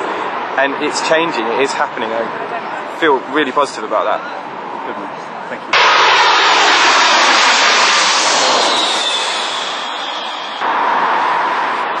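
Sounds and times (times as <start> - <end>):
jet aircraft engine noise: 5.7 - 10.7
falling whine: 5.8 - 12.0.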